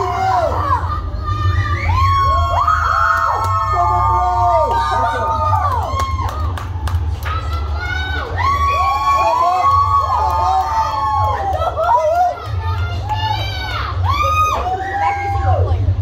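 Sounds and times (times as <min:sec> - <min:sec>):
low rumble: 0:00.0 - 0:09.2
children shouting and cheering: 0:00.0 - 0:16.0.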